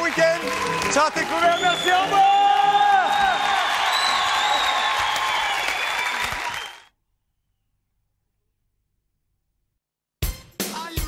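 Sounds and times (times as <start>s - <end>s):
audience applause: 0.0s - 6.9s.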